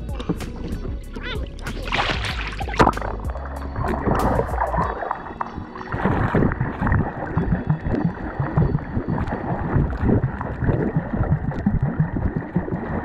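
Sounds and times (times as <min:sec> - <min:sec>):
background music: 0:00.0 - 0:12.2
muffled underwater water rushing: 0:00.0 - 0:13.0.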